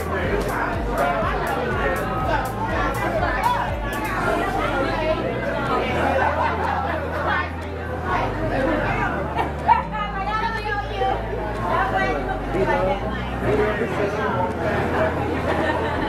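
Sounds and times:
background music with bass: 0.0s - 16.0s
crowd babble: 0.0s - 16.0s.

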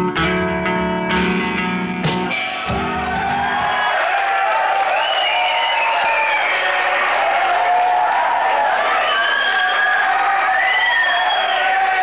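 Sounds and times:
audience applauding: 3.0s - 12.0s.

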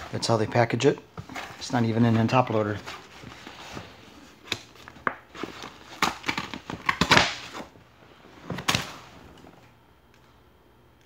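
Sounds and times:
paper rustling and crackling: 0.0s - 7.8s.

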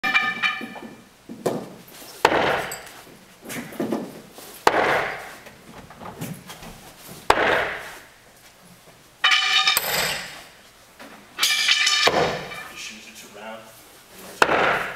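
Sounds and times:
throwing spikes striking wooden board: 0.0s - 3.0s, 3.6s - 5.4s, 7.2s - 8.1s, 9.2s - 10.5s, 11.4s - 12.7s, 14.4s - 14.9s.

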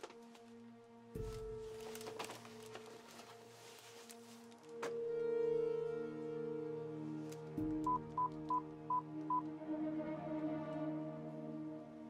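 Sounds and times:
ambient music drone: 0.0s - 12.0s
phone keypad beeps: 7.9s - 9.4s.

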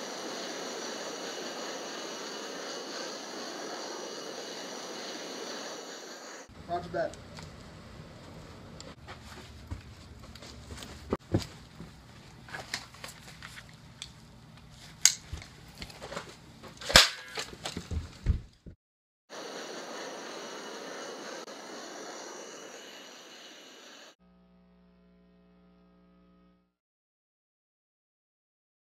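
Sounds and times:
steady rushing noise: 0.0s - 7.1s, 19.4s - 24.2s
faint hum: 19.4s - 26.8s.

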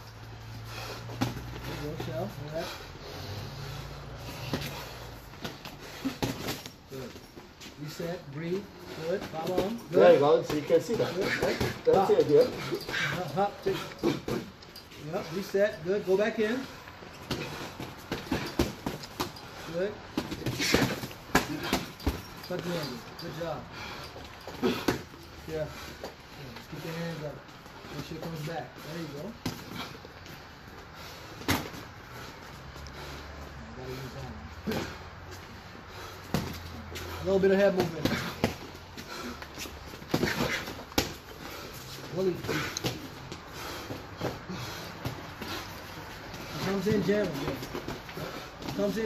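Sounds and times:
boxing gloves smacking: 0.8s - 2.4s, 4.2s - 6.8s, 9.0s - 15.2s, 17.1s - 23.4s, 24.1s - 26.2s, 31.4s - 32.6s, 34.6s - 35.5s, 36.1s - 49.0s.

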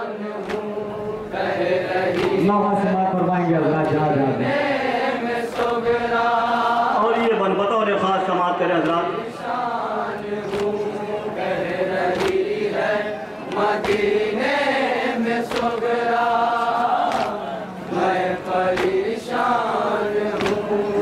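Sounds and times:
men chanting in unison: 0.0s - 7.6s, 8.6s - 21.0s
hand slaps on chest: 0.4s - 0.7s, 2.1s - 2.4s, 12.1s - 12.4s, 15.5s - 15.9s, 17.1s - 17.4s, 18.7s - 19.0s, 20.3s - 20.7s.

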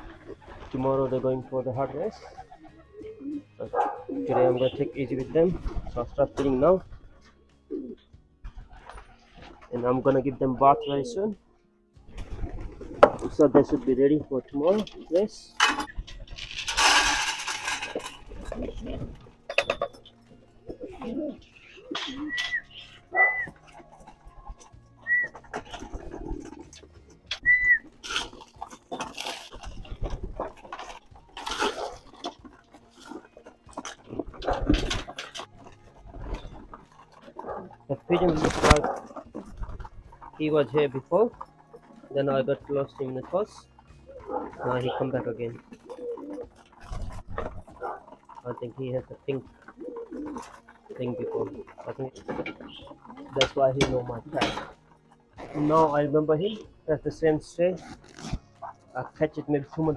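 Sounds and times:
wings flapping: 0.0s - 9.8s, 12.1s - 13.9s, 14.6s - 55.6s
pigeons cooing: 0.0s - 11.4s, 12.0s - 59.9s.

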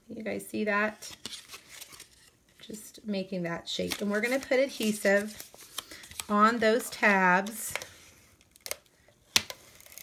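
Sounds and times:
cardstock handling: 1.1s - 2.8s, 3.8s - 8.0s.

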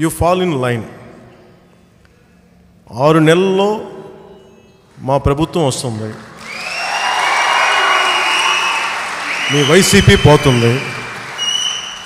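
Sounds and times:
audience applauding and cheering: 6.1s - 12.0s.

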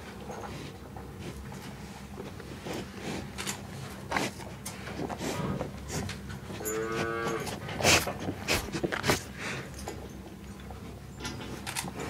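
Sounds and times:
cow mooing: 6.6s - 7.6s.

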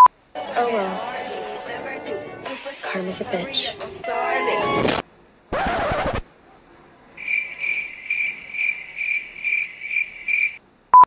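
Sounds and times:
cricket chirping: 7.2s - 10.6s.

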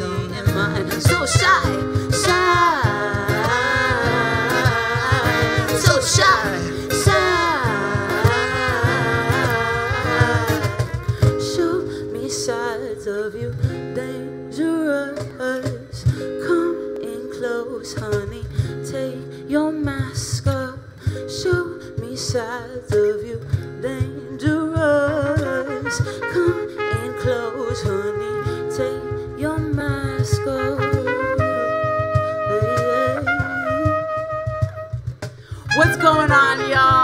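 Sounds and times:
live pop band playing: 0.0s - 37.0s
trumpet melody: 0.9s - 11.7s, 25.3s - 37.0s.

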